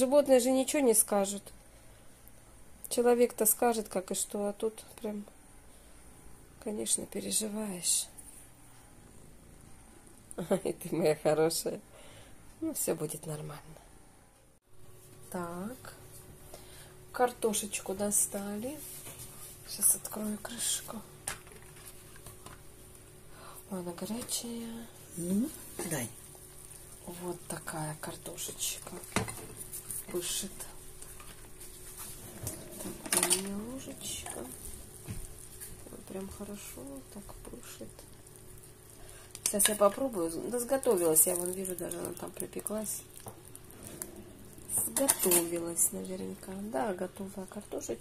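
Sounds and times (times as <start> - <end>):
faint steady hum: 0.0 - 48.0
spoon scraping in clay pot: 43.8 - 45.6.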